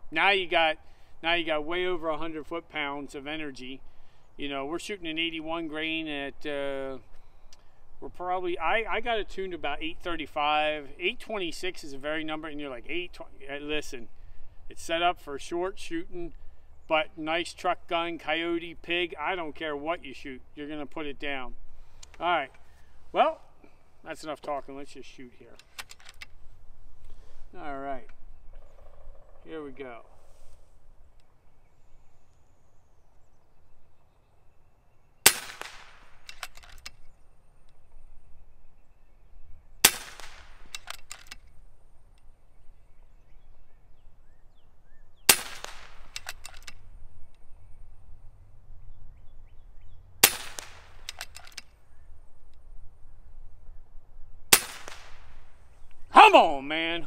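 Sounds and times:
air rifle shots cracking: 35.2s - 37.0s, 39.8s - 41.6s, 45.3s - 46.9s, 50.2s - 51.7s, 54.5s - 55.7s.

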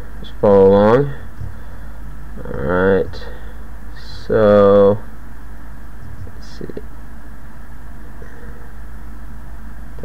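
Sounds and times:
faint background hiss: 0.0s - 10.0s
steady low hum: 0.0s - 10.0s.

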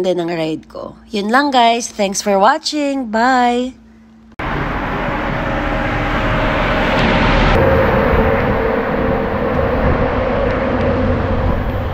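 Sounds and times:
low engine hum: 4.3s - 11.9s.

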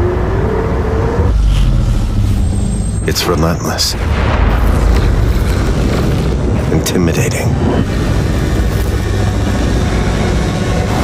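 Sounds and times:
deep rumble: 0.0s - 11.0s
rushing noise: 0.0s - 11.0s.

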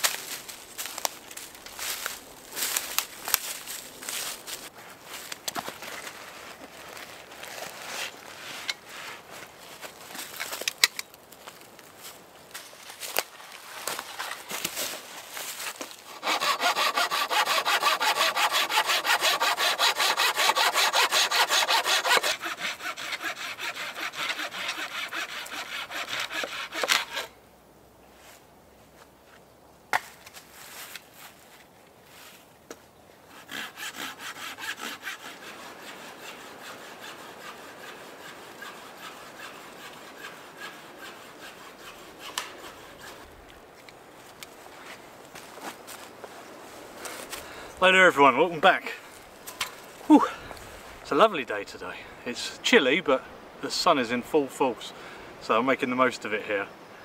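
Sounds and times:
hand saw cutting wood: 15.6s - 27.3s, 33.3s - 43.3s.

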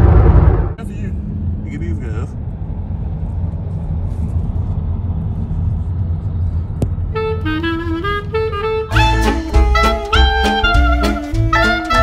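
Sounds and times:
car cabin road and engine rumble: 0.0s - 9.8s.

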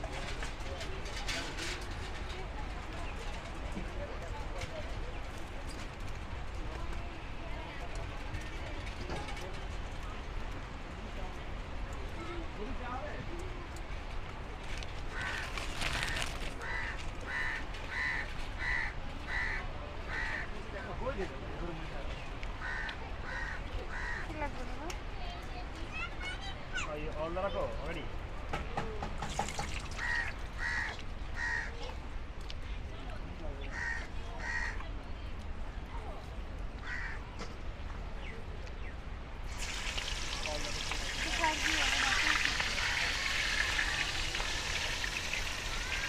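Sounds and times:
crow cawing: 15.1s - 20.5s, 22.6s - 24.3s, 30.0s - 31.8s, 33.7s - 34.8s, 36.8s - 37.2s, 42.6s - 46.0s.

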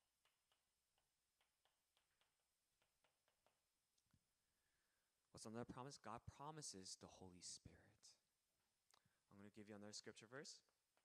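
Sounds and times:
chalk tapping and scraping on chalkboard: 0.2s - 3.7s.

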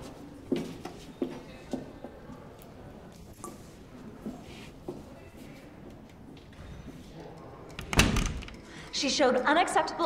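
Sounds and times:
door banging shut: 7.7s - 8.6s.

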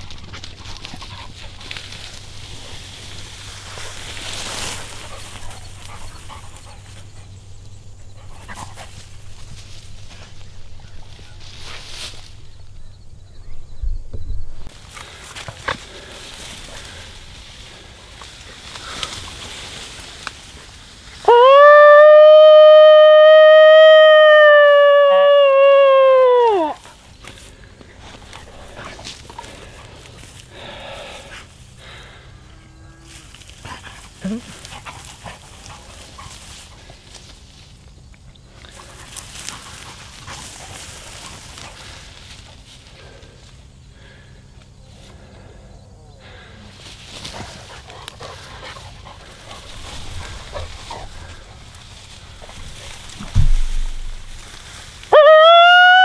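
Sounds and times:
coyote howl predator call: 21.2s - 26.9s, 55.1s - 56.0s.

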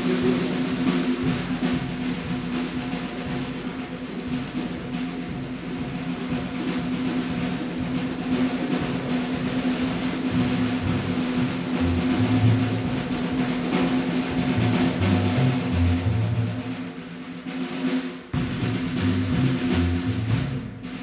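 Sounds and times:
jazz band playing: 0.0s - 21.0s
low bass notes: 10.4s - 13.0s, 14.4s - 16.7s, 18.4s - 20.8s.

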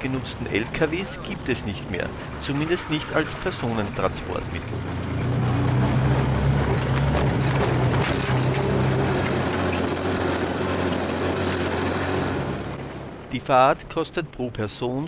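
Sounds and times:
motorcycle engine running: 0.0s - 13.0s
road noise: 0.0s - 15.0s.

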